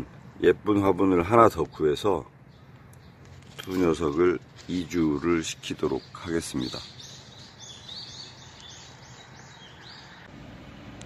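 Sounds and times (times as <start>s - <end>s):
small bird chirping: 2.4s - 10.3s.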